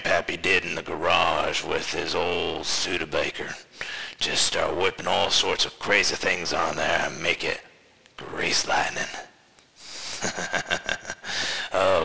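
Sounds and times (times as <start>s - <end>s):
man chuckling under his breath: 9.9s - 11.9s.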